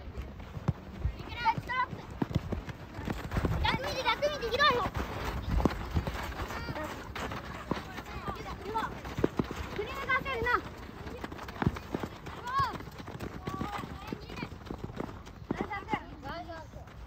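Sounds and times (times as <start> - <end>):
running footsteps on gravel: 0.0 - 17.0
children shouting: 3.6 - 5.4, 9.7 - 14.4.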